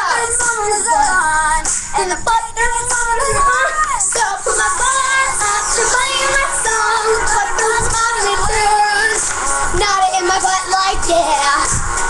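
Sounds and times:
backing music track: 0.0s - 12.0s
high voice singing pop song: 0.0s - 12.0s.

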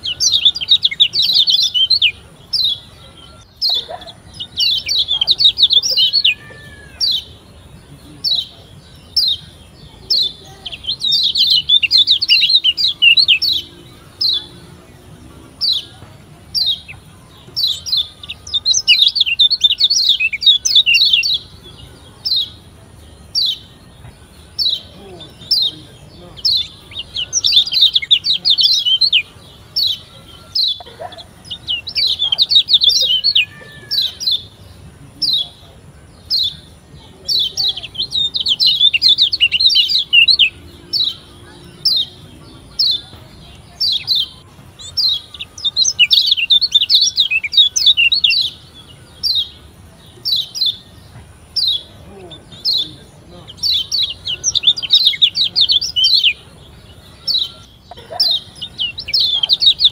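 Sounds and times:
bird chirping and twittering: 0.0s - 59.9s.

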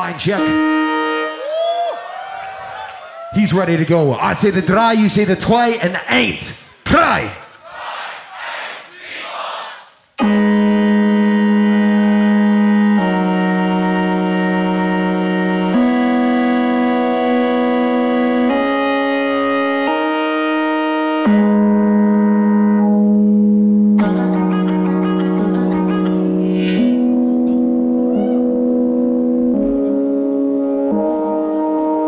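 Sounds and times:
crowd noise: 7.5s - 10.1s
synth pad chords: 10.2s - 32.0s.

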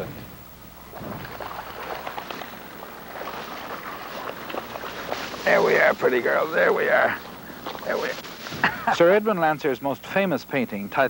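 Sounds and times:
dog splashing through water: 0.8s - 8.7s.

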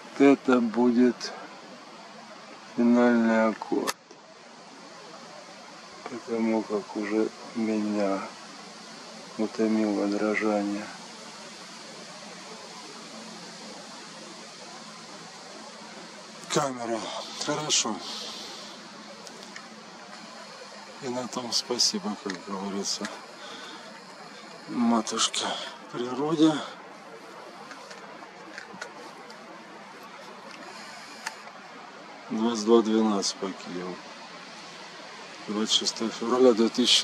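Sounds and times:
steady background hiss: 0.0s - 37.0s.

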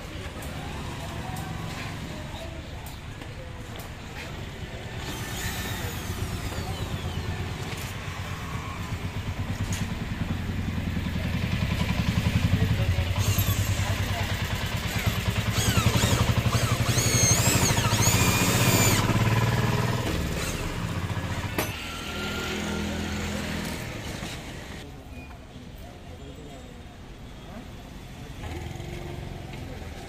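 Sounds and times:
electric drill boring into metal: 5.0s - 6.7s, 13.2s - 14.2s, 14.8s - 24.2s.

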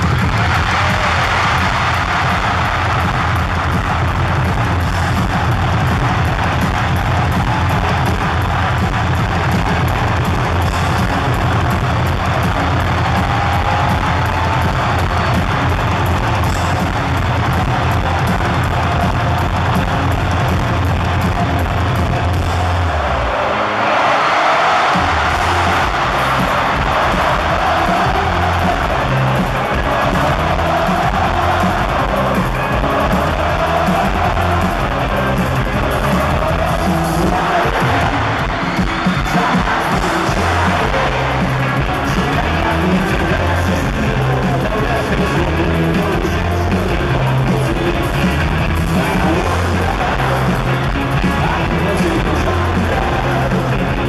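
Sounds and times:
live rock band playing: 0.0s - 23.0s, 24.6s - 54.0s.

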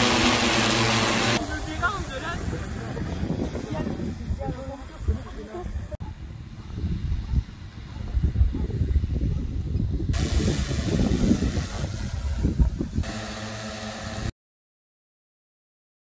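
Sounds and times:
drone rotor rumble: 0.0s - 4.5s, 10.0s - 14.3s
steady multi-pitch hum: 13.0s - 14.3s.

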